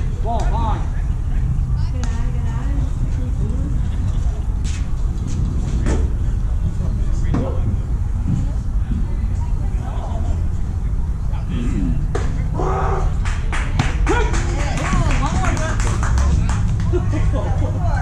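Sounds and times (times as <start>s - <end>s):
distant players shouting: 11.5s - 15.5s.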